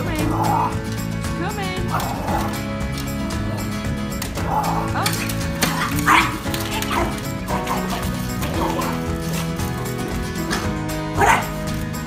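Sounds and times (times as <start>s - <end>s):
background music: 0.0s - 12.0s
small dog yapping: 5.6s - 9.0s, 11.2s - 11.5s.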